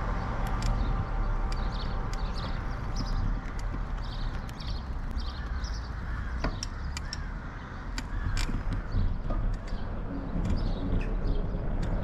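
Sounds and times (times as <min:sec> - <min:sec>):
steady low rumble: 0:00.0 - 0:12.0
birds calling: 0:00.1 - 0:12.0
light rattling clicks: 0:01.5 - 0:05.6, 0:06.4 - 0:07.3, 0:07.9 - 0:12.0.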